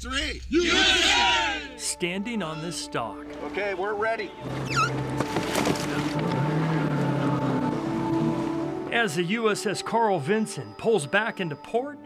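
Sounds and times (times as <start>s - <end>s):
background music: 0.1s - 12.0s
jet ski engines running: 4.3s - 9.1s.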